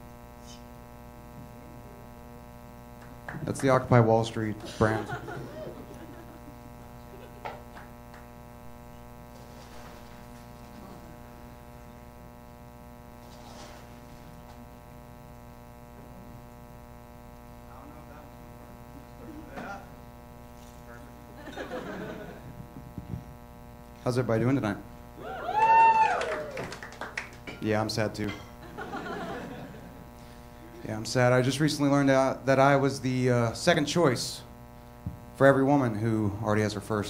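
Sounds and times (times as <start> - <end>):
electrical mains hum: 0.0 - 37.0.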